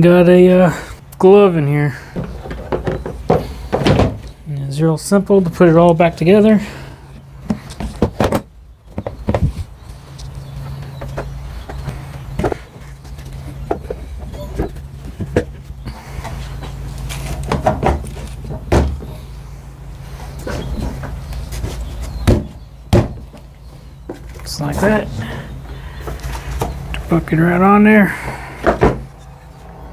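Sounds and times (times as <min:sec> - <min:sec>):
steady low hum: 0:00.0 - 0:29.9
wood and plastic parts knocking: 0:02.2 - 0:04.3, 0:28.6 - 0:29.0.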